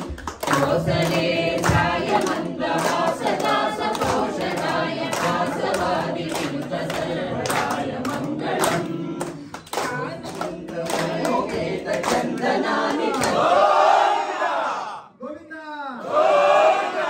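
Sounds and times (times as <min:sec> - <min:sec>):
hand claps: 0:00.0 - 0:13.5
crowd singing a chant: 0:00.0 - 0:15.0, 0:16.0 - 0:17.0.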